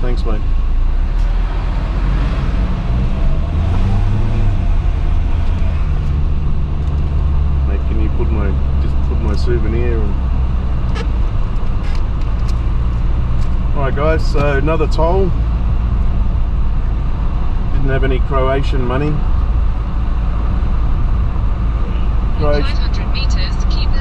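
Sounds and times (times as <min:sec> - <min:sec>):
car engine accelerating: 0:00.0 - 0:24.0.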